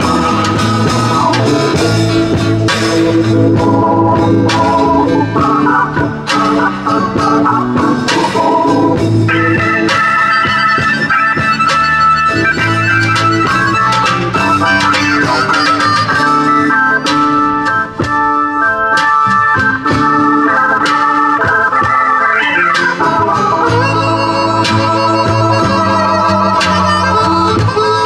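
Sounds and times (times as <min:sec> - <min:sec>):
drum and cymbal hits: 0:00.0 - 0:22.2
blues band playing: 0:00.0 - 0:28.0
organ chords and runs: 0:00.0 - 0:28.0.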